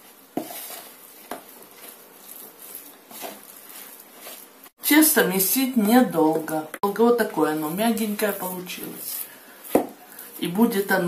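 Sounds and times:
spoon stirring dough in plastic bowl: 0:00.0 - 0:11.0.

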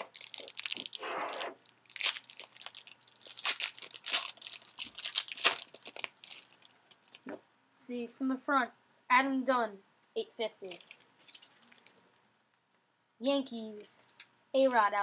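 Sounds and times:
plastic wrapping crinkling and tearing: 0:00.0 - 0:07.3, 0:10.7 - 0:12.6.

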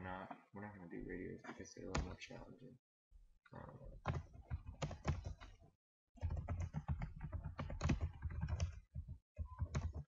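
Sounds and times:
computer keyboard typing: 0:03.9 - 0:05.6, 0:06.2 - 0:10.0.

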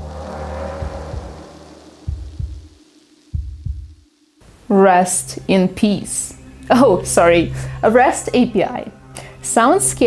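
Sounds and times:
whoosh: 0:00.0 - 0:03.4
heartbeat-like thumps: 0:00.0 - 0:04.1
low drone: 0:00.0 - 0:04.4.

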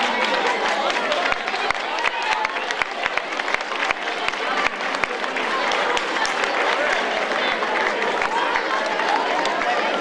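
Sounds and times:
audience applauding: 0:00.0 - 0:10.0
crowd chattering: 0:00.0 - 0:10.0.

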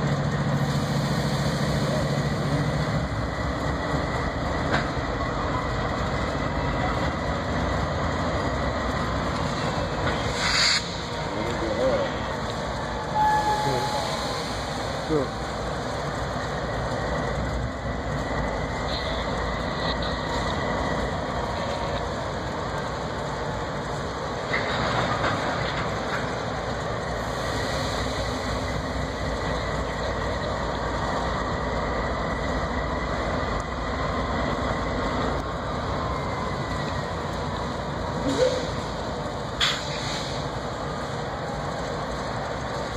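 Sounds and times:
locomotives idling: 0:00.0 - 0:42.9
high steady tone: 0:13.1 - 0:14.4
faint high whine: 0:13.1 - 0:14.7.

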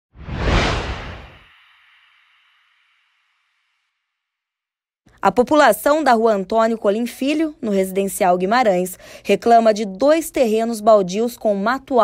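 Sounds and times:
whoosh with deep rumble: 0:00.1 - 0:02.8.

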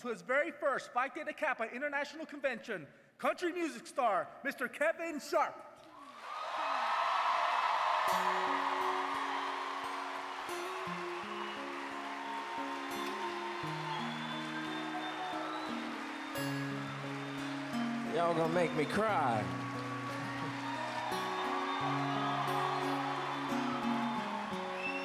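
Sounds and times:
audience applause and cheering: 0:05.9 - 0:25.0.

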